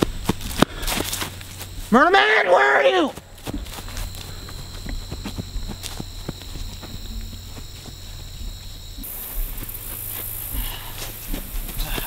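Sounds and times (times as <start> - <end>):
faint high-pitched whine: 0.0 - 12.0
footsteps running on grass: 3.0 - 12.0.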